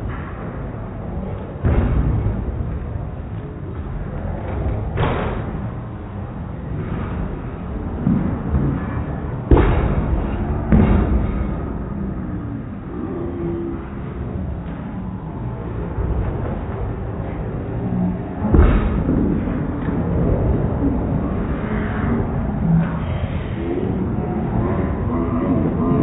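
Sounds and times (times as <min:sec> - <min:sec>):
low background noise: 0:00.0 - 0:26.0.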